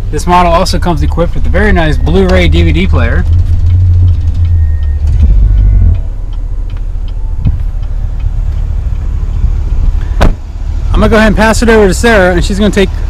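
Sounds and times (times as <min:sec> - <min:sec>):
low rumble: 0:00.0 - 0:12.6
car door shutting: 0:10.1 - 0:10.5.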